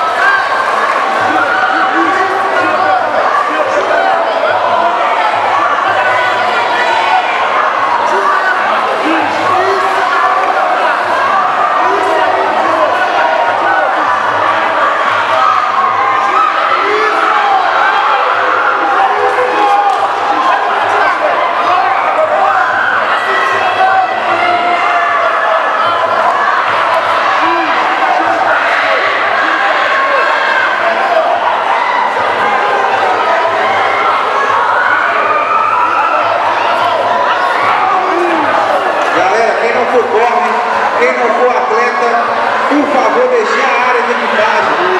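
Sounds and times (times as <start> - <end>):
crowd shouting and cheering: 0.0 - 44.9.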